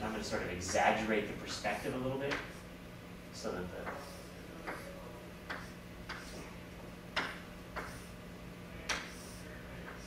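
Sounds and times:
low room hum: 0.0s - 10.0s
chalk scraping on blackboard: 3.8s - 6.5s, 7.8s - 8.1s, 8.9s - 10.0s.

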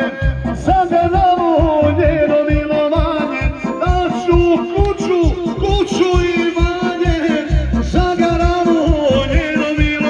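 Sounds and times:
folk music with bass beat: 0.0s - 10.0s.

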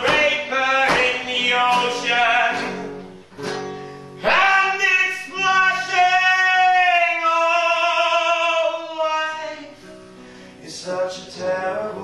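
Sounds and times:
man singing: 0.0s - 2.9s, 4.2s - 9.9s, 10.6s - 12.0s
acoustic guitar strummed: 0.0s - 12.0s.

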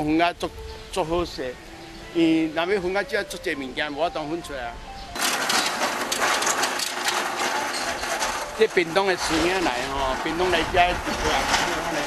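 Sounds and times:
recyclables clattering and rattling: 5.2s - 12.0s.

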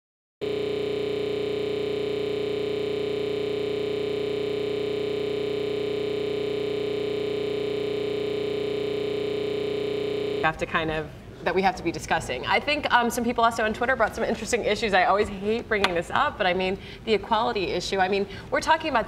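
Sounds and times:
buzzy electronic tone: 0.4s - 10.6s.

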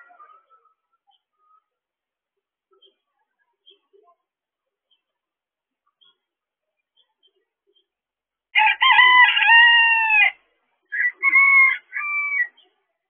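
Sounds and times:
rooster crowing: 8.6s - 12.5s.

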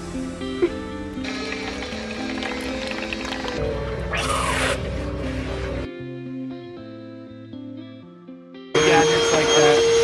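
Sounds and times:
background music: 0.0s - 10.0s
coffee pouring into a cup: 1.2s - 3.6s.

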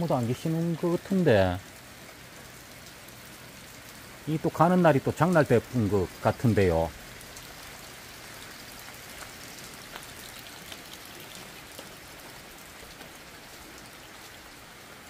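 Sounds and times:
steady rain hiss: 0.0s - 15.0s.

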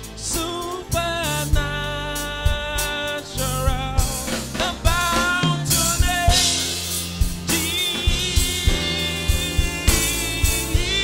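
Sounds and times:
bass and keyboard: 0.0s - 11.0s
drum kit beat: 0.0s - 11.0s
man singing: 0.0s - 11.0s.

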